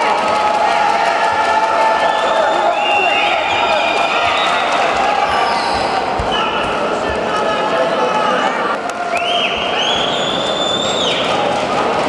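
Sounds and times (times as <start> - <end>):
spectators shouting: 0.0 - 12.0.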